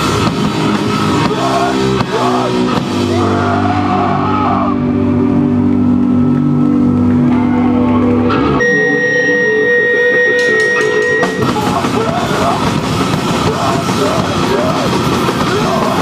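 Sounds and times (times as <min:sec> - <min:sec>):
high steady guitar tone: 0:00.0 - 0:16.0
punk band playing: 0:00.0 - 0:16.0.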